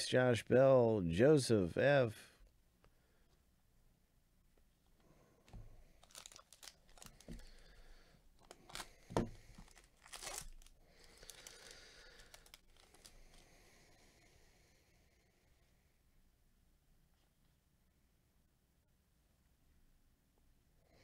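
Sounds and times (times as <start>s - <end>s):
papery rustling: 5.5s - 7.7s, 8.4s - 13.4s.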